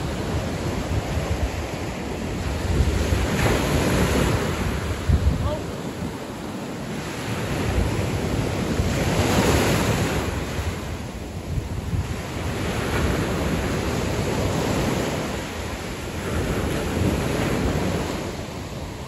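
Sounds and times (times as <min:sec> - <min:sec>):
surf washing up beach: 0:00.0 - 0:19.0
wind buffeting microphone: 0:00.0 - 0:19.0.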